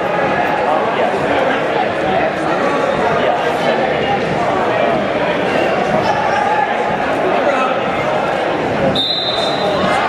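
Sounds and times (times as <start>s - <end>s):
crowd chatter: 0.0s - 10.0s
referee's whistle: 8.9s - 9.9s.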